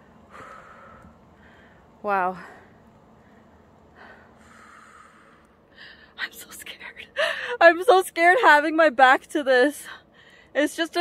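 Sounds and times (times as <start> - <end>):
faint breath close to microphone: 0.0 - 6.2.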